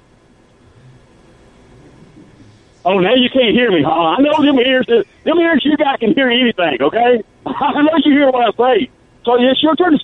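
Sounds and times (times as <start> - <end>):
phone line hiss: 0.6 - 10.0
man speaking over telephone: 2.9 - 10.0.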